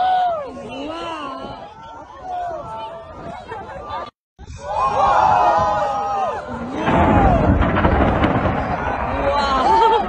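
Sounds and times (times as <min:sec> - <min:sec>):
crowd voices: 0:00.0 - 0:10.0
deep rumbling boom with crackle: 0:06.8 - 0:10.0.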